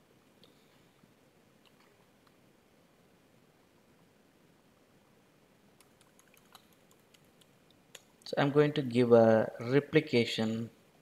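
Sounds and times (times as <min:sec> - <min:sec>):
computer keyboard clicks: 0:05.8 - 0:07.5.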